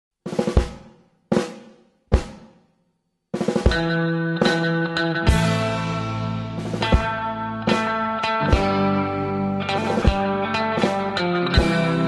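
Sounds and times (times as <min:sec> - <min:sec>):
drum hits ringing out: 0:00.3 - 0:02.6, 0:03.4 - 0:12.0.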